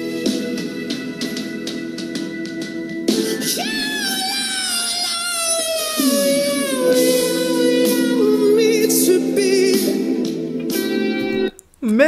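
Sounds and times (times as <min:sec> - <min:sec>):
man singing long high note: 0:03.4 - 0:10.2.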